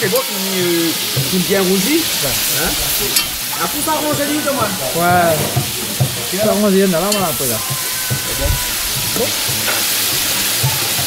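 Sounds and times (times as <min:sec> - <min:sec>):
fish sizzling in sauce: 0:00.0 - 0:11.0.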